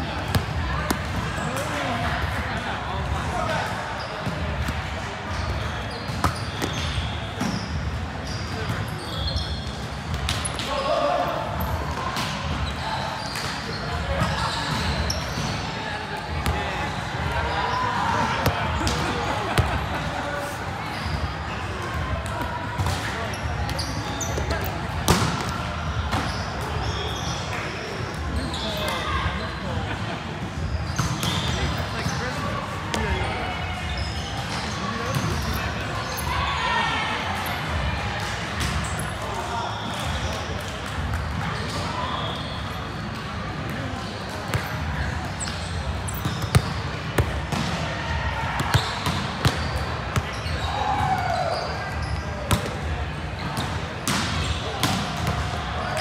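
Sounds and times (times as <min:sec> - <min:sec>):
players shouting and chatting: 0:00.0 - 0:56.0.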